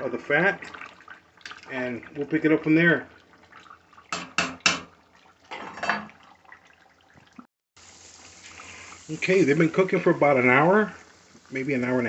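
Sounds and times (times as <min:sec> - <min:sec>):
spatula knocking on pot: 0:04.1 - 0:04.9
pork sizzling in fat: 0:07.8 - 0:12.0.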